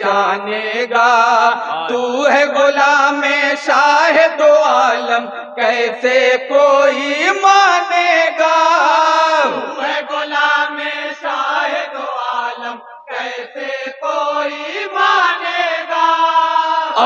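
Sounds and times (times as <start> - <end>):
men singing in chorus: 0.0 - 17.0.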